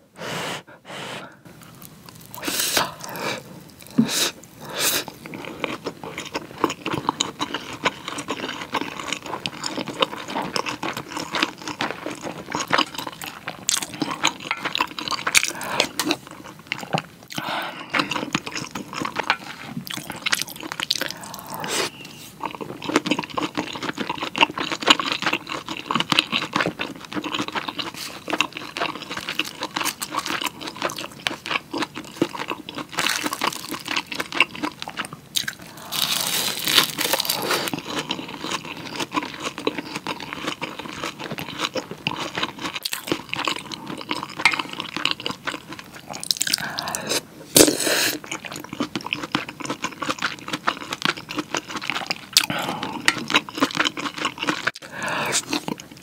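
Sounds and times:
person chewing food: 0:00.2 - 0:56.0.

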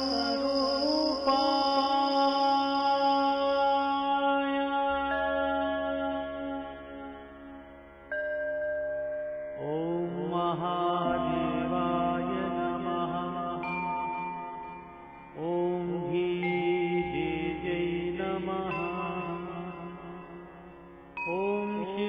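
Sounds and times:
mantra chanting with music: 0:00.0 - 0:08.2, 0:09.5 - 0:22.0.

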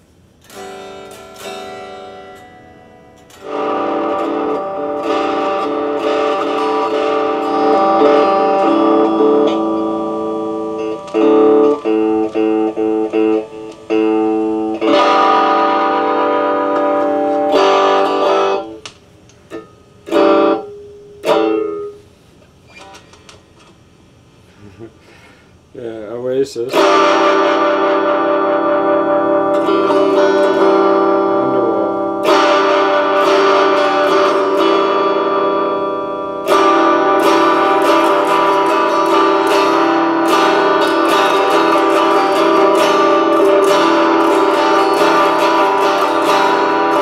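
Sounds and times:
electric guitar playing chords: 0:00.0 - 0:23.8, 0:26.6 - 0:47.0.

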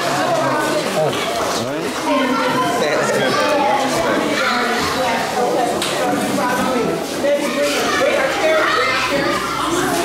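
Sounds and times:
adults and children talking: 0:00.0 - 0:10.0.

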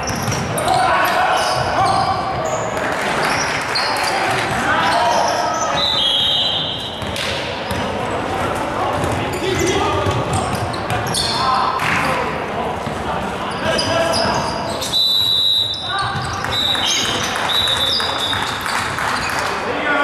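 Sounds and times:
basketball bouncing: 0:00.0 - 0:00.6, 0:07.0 - 0:08.0, 0:08.9 - 0:11.1
sneakers squeaking on court: 0:00.0 - 0:08.3, 0:08.9 - 0:11.6, 0:12.8 - 0:19.4.

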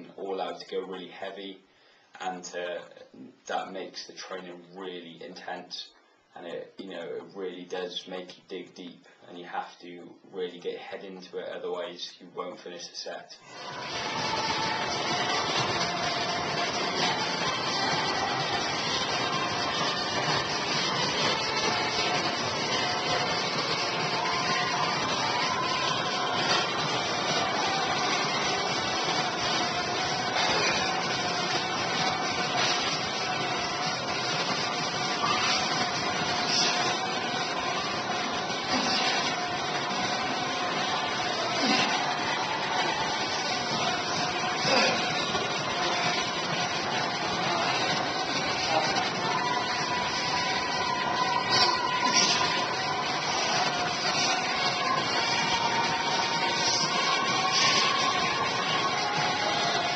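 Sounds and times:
steady rushing noise: 0:13.4 - 0:59.9.

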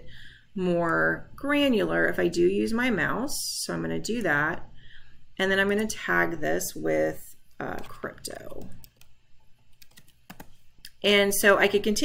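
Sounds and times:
keystrokes on computer keyboard: 0:07.8 - 0:10.6.

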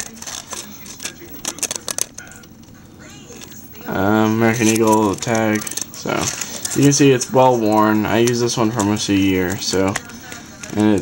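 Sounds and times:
duct tape crinkling and clicking: 0:00.0 - 0:11.0.

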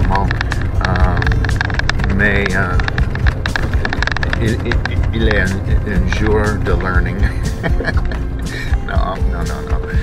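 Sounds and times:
small clicks and rattles: 0:00.0 - 0:08.3
truck engine rumble inside cab: 0:00.0 - 0:10.0.

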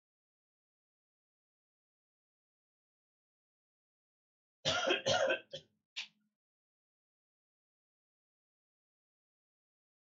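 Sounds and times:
person coughing: 0:04.7 - 0:05.6.

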